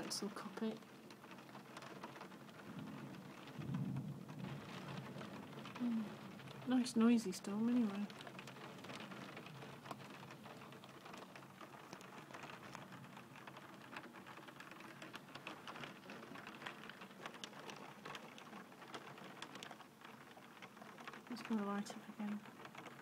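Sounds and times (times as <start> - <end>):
faint rain pattering: 0.0 - 23.0.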